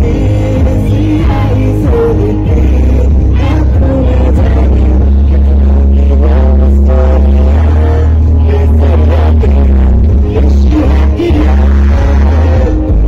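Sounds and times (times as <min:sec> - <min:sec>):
loud concert music with bass: 0:00.0 - 0:13.0
person singing: 0:00.0 - 0:13.0.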